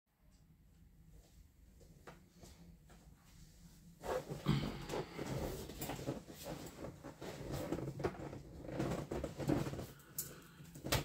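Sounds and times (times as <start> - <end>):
clothing rustling: 2.3 - 10.3
chair creaking and knocking: 4.3 - 10.0
breathing: 4.4 - 5.6, 9.8 - 10.9.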